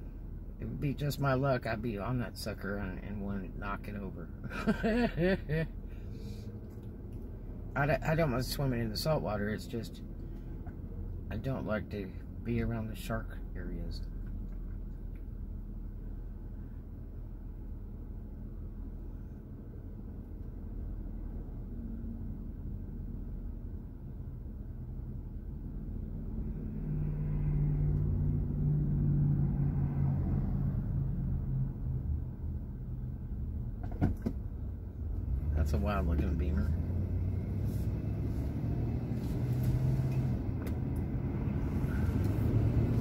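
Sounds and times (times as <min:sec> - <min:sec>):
car idling rumble: 0:00.0 - 0:19.5.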